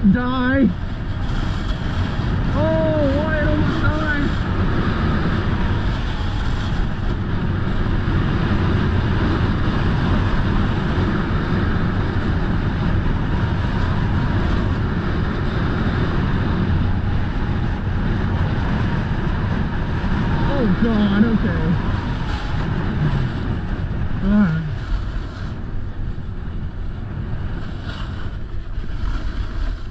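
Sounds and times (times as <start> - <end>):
snowboard scraping over snow: 0.0 - 29.9
wind rushing over microphone: 0.0 - 29.9
person crying out: 24.2 - 24.8.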